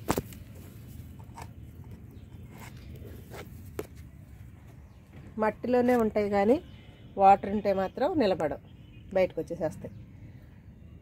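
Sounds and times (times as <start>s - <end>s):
clicks and scrapes: 0.0s - 4.1s.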